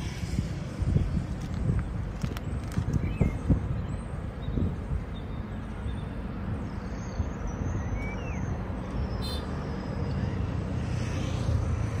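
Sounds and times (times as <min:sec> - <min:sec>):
steady low rumble: 0:00.0 - 0:06.8.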